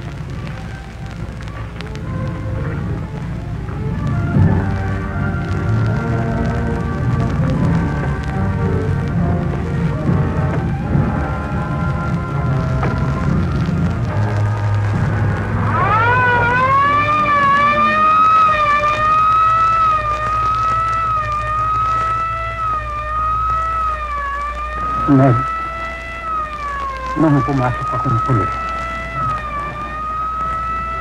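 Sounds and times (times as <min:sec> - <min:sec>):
low steady drone: 0:00.0 - 0:31.0
police siren wailing: 0:00.0 - 0:31.0
dramatic film score: 0:00.5 - 0:31.0.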